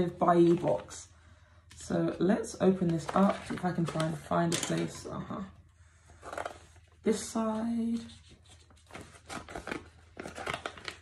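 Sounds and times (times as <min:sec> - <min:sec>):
paper envelope rustling: 0:02.1 - 0:05.2, 0:06.1 - 0:11.0.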